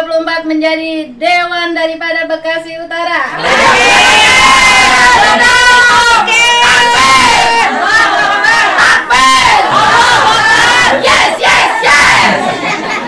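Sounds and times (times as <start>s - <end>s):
women shouting and cheering: 3.3s - 12.4s.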